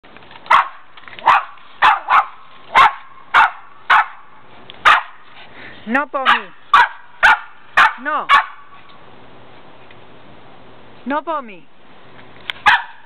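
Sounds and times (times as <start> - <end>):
dog barking: 0.5 - 5.2, 6.2 - 8.7, 12.6 - 13.0.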